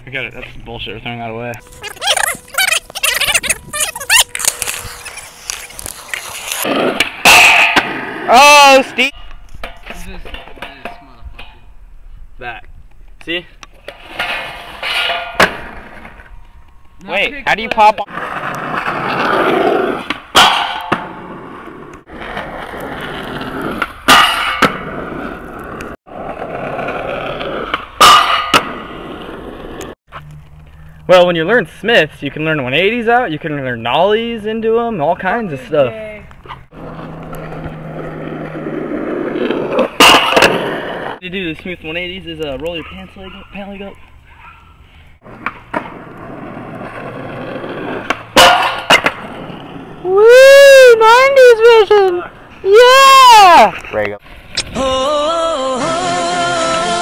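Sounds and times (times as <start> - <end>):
skateboard wheels rolling on asphalt: 1.6 - 9.2, 13.8 - 16.4, 17.6 - 30.7, 36.3 - 42.6, 45.2 - 54.5
high-pitched squealing voice: 1.7 - 6.6
skateboard grinding on metal bar: 1.8 - 8.4, 13.8 - 16.3, 18.0 - 30.0, 36.4 - 41.2, 45.2 - 50.0
skateboard landing on street: 18.0 - 29.9, 37.2 - 41.2, 45.2 - 49.9.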